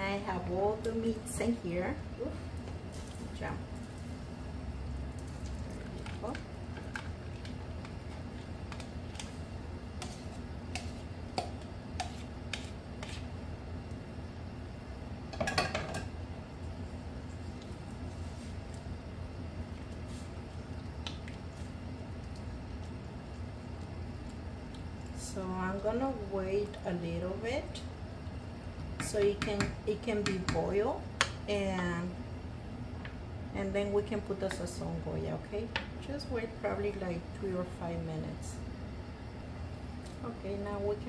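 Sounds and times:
steady low hum: 0.0s - 41.0s
utensil scraping a bowl: 10.0s - 11.0s, 12.0s - 13.3s.

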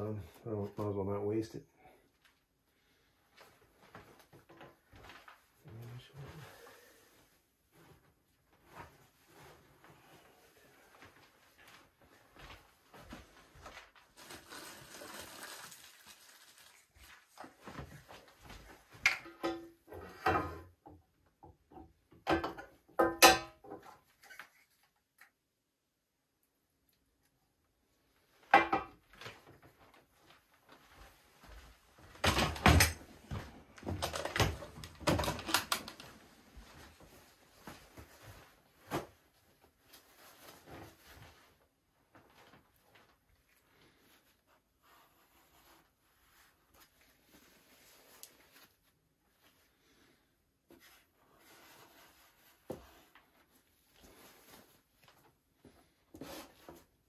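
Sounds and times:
rustling: 2.2s - 19.0s, 33.3s - 57.0s.

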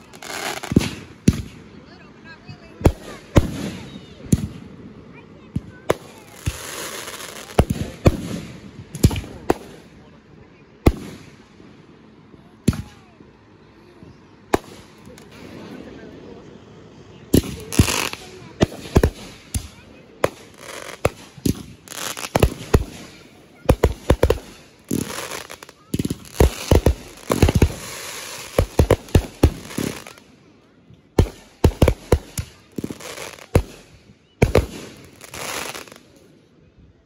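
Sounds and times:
fireworks bangs: 0.0s - 1.7s, 2.5s - 9.9s, 10.8s - 11.7s, 14.5s - 16.0s, 17.2s - 30.3s, 31.1s - 36.0s
fireworks crackling: 0.0s - 1.7s, 2.6s - 10.0s, 10.8s - 12.0s, 14.2s - 16.3s, 17.2s - 30.4s, 31.1s - 36.2s.

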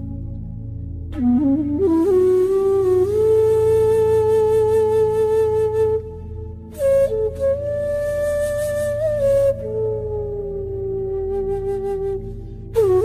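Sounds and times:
flute playing long notes: 1.1s - 13.0s.

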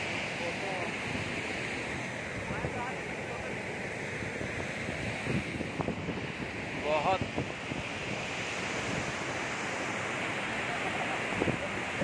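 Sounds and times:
rushing waterfall: 0.0s - 12.0s
wind buffeting microphone: 4.1s - 12.0s.

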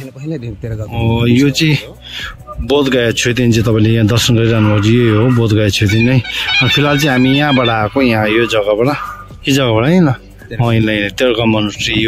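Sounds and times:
man's voice gliding in pitch: 3.7s - 9.2s.

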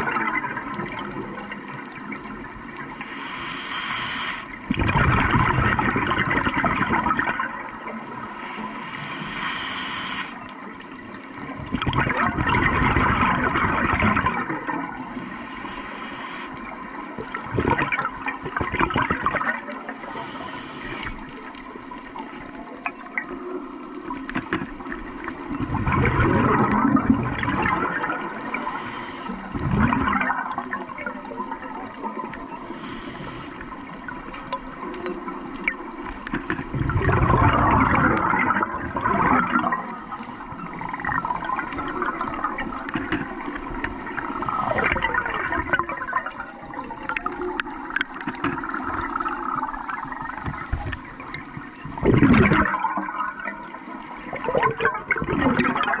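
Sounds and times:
exhaled bubbles rushing: 0.0s - 3.0s, 4.5s - 8.4s, 10.9s - 15.3s, 16.6s - 20.0s, 21.0s - 32.7s, 33.3s - 56.0s
regulator hissing inhalations: 2.9s - 4.6s, 8.2s - 10.5s, 15.0s - 16.8s, 19.8s - 21.3s, 28.3s - 29.6s, 32.5s - 33.8s, 39.8s - 40.8s, 44.2s - 45.0s.

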